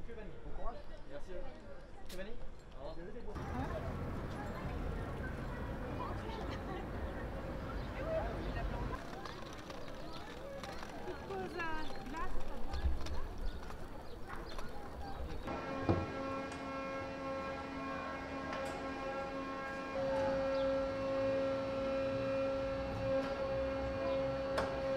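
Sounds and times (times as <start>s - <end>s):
voices: 3.4s - 16.1s
machine hum: 15.4s - 24.9s.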